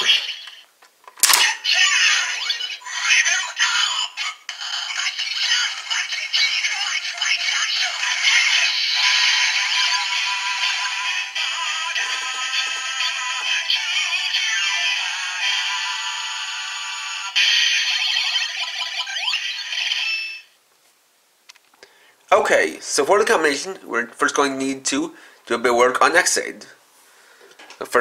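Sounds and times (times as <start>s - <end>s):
toy announcer voice: 0.0s - 0.6s, 1.3s - 20.2s
tinny synthesized song: 6.7s - 20.1s.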